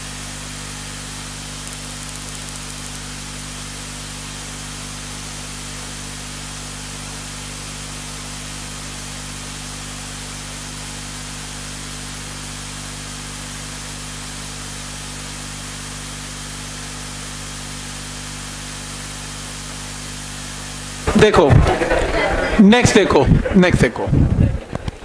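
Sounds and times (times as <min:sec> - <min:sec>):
low hum: 0:21.0 - 0:25.0.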